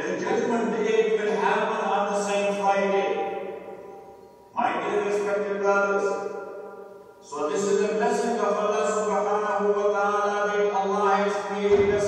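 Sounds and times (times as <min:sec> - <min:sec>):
man chanting: 0:07.4 - 0:12.0.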